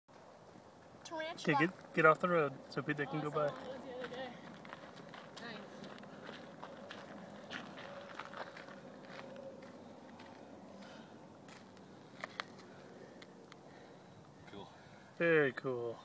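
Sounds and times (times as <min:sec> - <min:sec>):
footsteps on gravel and grass: 0:03.2 - 0:12.7
small clicks and crackles: 0:11.7 - 0:13.6.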